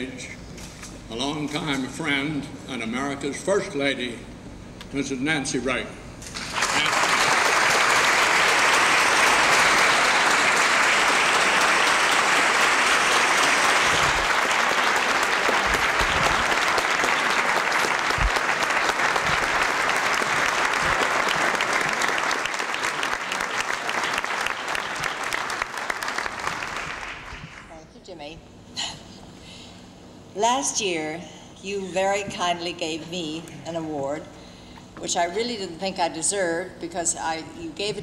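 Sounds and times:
audience applauding: 6.4 - 27.7.

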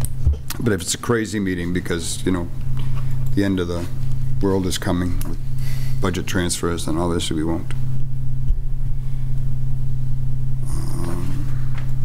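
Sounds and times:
low electrical hum: 0.0 - 12.0
faint voice: 10.6 - 11.6.

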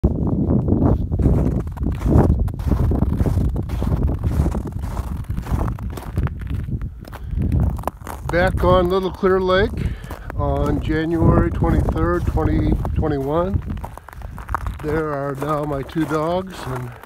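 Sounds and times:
wind rumble on microphone: 0.0 - 17.0
footsteps crunching on snow: 0.6 - 17.0.

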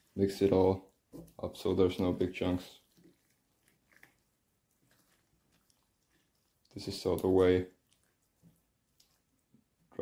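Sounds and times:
wet squishes of stirred curds: 0.0 - 10.0.

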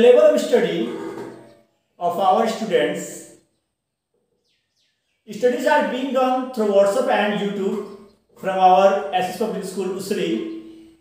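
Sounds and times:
man's voice: 0.0 - 1.0, 2.0 - 3.4, 5.3 - 7.8, 8.4 - 10.5
faint bird chirping: 1.0 - 2.6, 3.2 - 5.4, 7.4 - 8.4, 9.0 - 11.0.

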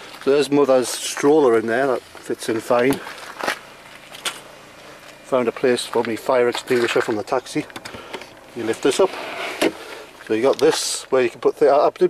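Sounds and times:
footsteps on gravel: 0.0 - 11.2
faint outdoor background: 0.0 - 12.0.

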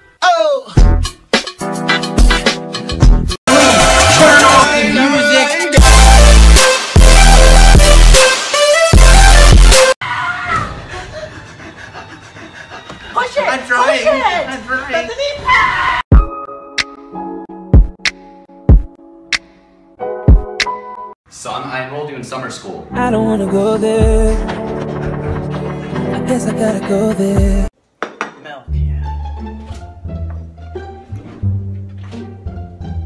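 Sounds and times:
music: 0.8 - 10.0, 16.1 - 21.2, 22.8 - 27.7, 28.7 - 33.0
low string music: 28.7 - 33.0.

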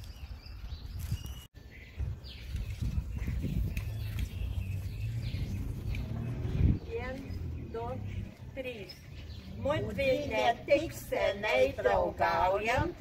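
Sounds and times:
small birds chirping: 0.0 - 13.0
low outdoor rumble: 3.4 - 13.0.

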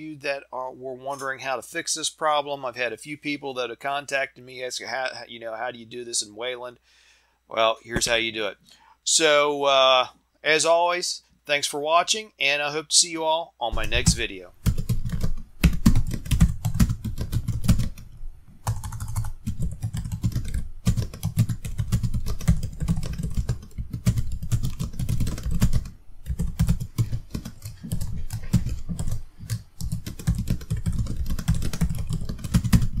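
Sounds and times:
typing on computer keyboard: 13.9 - 33.0.

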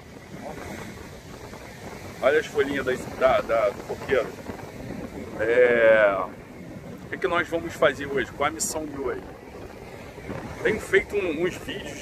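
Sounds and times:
surf on beach: 0.0 - 12.0
wind buffeting microphone: 0.0 - 12.0.

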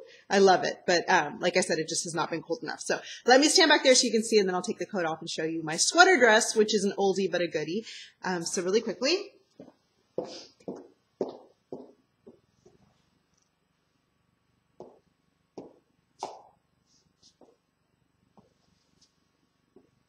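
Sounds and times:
footsteps in heeled boots: 9.5 - 12.9, 14.8 - 15.0, 15.6 - 16.6.

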